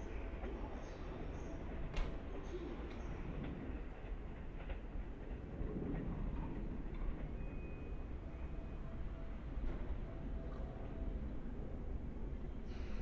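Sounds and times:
electric train rumble: 0.0 - 13.0.

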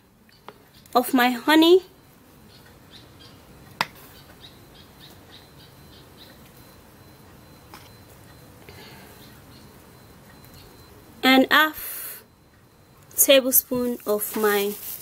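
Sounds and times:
faint bird chirps: 0.2 - 13.0.

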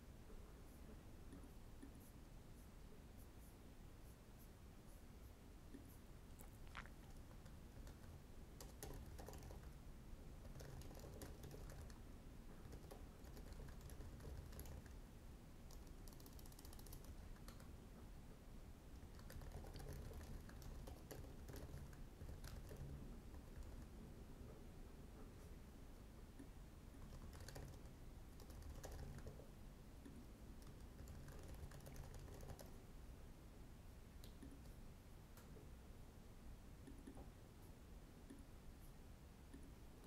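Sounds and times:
typing on computer keyboard: 7.1 - 9.8, 10.4 - 12.0, 12.6 - 15.0, 15.6 - 17.7, 19.0 - 24.0, 27.0 - 29.4, 30.6 - 32.8.

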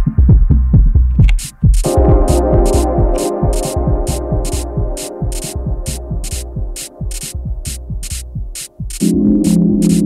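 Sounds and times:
lo-fi electronic dance music: 1.2 - 10.0.

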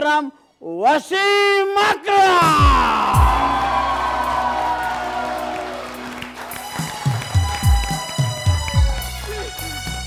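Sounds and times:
heavy drum beat: 2.4 - 3.6, 6.8 - 9.2
audience applause and cheering: 2.5 - 10.0
walk-on music: 3.2 - 10.0.

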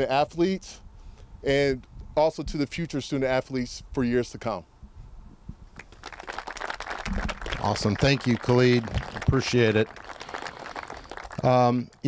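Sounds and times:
audience applause: 5.8 - 11.8.

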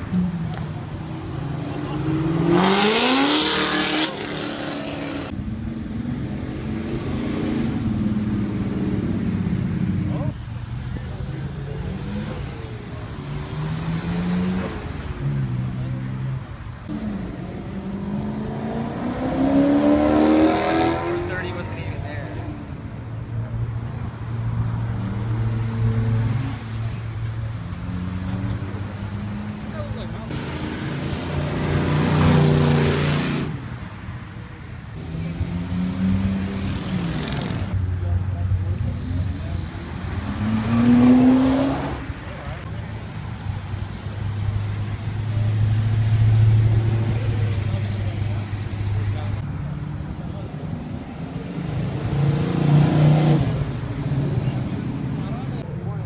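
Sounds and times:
cars accelerating past: 0.0 - 10.3, 11.6 - 22.7, 24.0 - 33.8, 35.0 - 37.8, 38.4 - 55.6.

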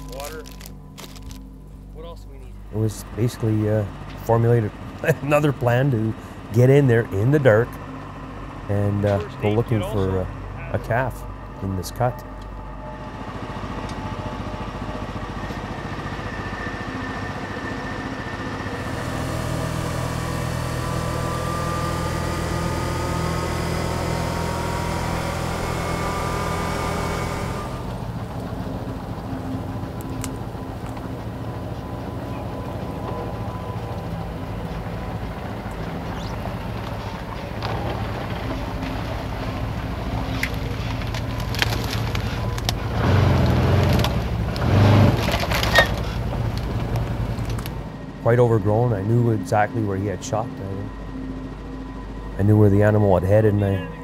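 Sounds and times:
faint rising whine: 0.0 - 44.6, 45.3 - 54.0
quad bike engine running: 2.5 - 50.8.

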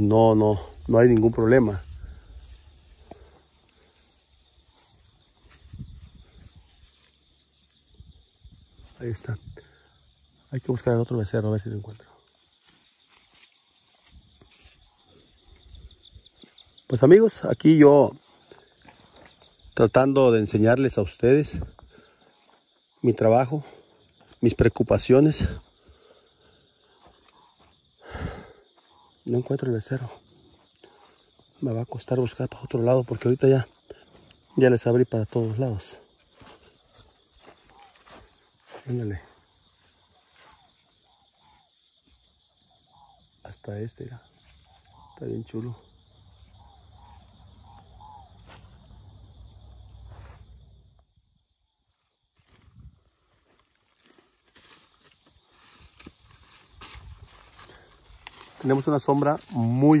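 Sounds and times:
footsteps on dry leaves: 0.7 - 7.3, 12.5 - 16.8, 35.3 - 41.0, 52.4 - 60.0
high-pitched insect drone: 12.3 - 20.7, 21.6 - 51.5
faint chirping calls: 28.7 - 31.6, 36.8 - 38.7, 39.4 - 50.6.

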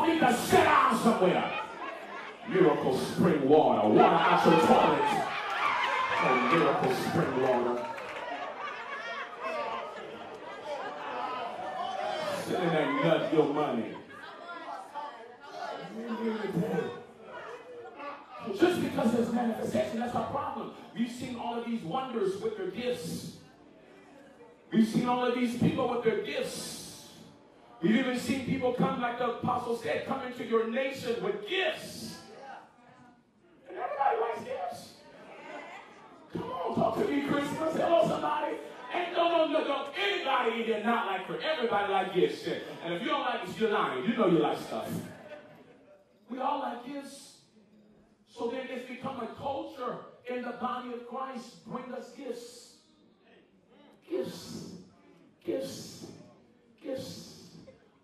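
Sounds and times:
amplified preaching: 0.0 - 1.8, 2.4 - 8.0, 18.4 - 23.4, 36.3 - 45.3, 54.0 - 56.2, 56.8 - 57.7
murmur of voices: 0.0 - 58.0
people chattering: 0.0 - 58.0
person speaking in large hall: 0.0 - 58.0.

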